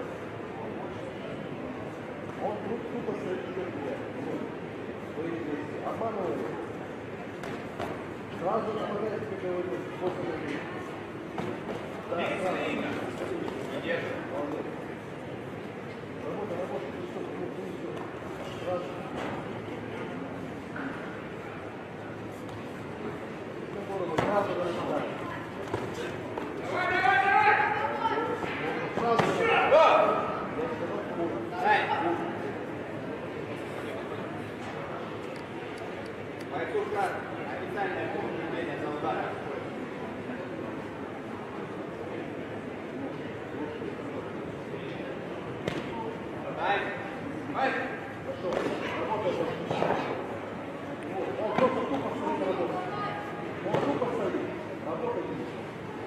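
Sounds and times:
voices shouting in a hall: 26.0 - 32.6.

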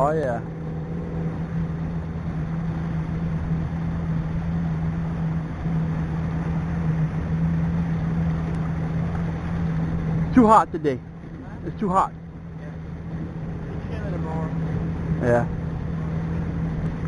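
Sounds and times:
boat motor running: 0.0 - 17.0
water wash noise: 0.0 - 17.0.

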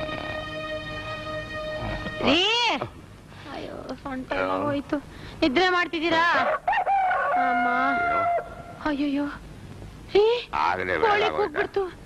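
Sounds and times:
film background music: 0.0 - 2.4.

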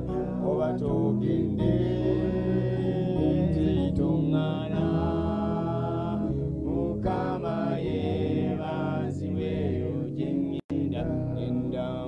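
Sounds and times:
backing music: 0.0 - 12.0
man singing slow melody: 10.4 - 12.0.

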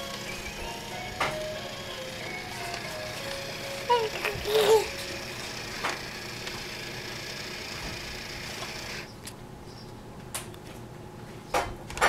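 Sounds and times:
simple electronic toy melody: 0.0 - 5.7.

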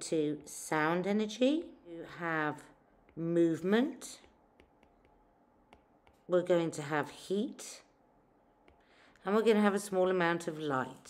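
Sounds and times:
stylus tapping tablet screen: 2.9 - 6.4, 8.6 - 8.9.

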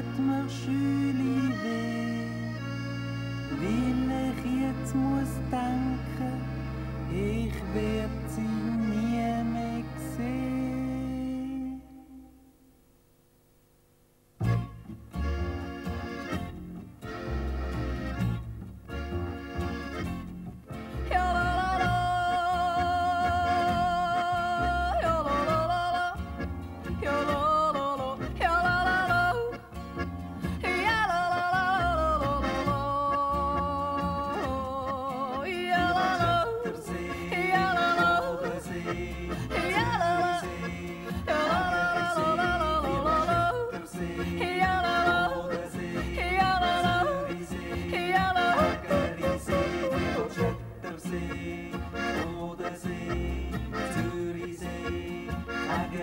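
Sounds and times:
folk band playing: 0.0 - 11.9, 14.4 - 56.0
double bass: 0.0 - 12.3, 14.4 - 56.0
accordion: 0.0 - 12.5, 14.4 - 56.0
guitar: 0.0 - 12.8, 14.4 - 56.0
woman yodeling: 21.1 - 26.2, 30.6 - 38.6, 39.6 - 40.5, 41.3 - 47.3, 47.9 - 50.5.

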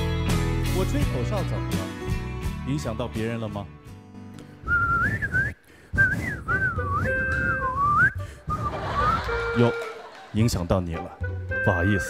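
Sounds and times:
man whistling a tune: 4.6 - 9.8.

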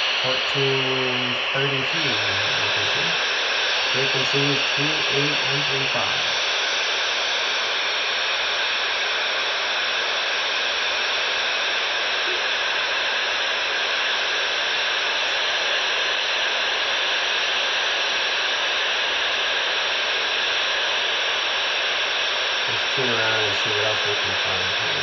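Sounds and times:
radio static hiss: 0.0 - 25.0.

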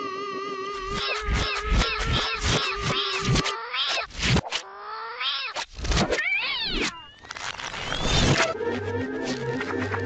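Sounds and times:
cartoon cat yowling: 6.2 - 7.1.

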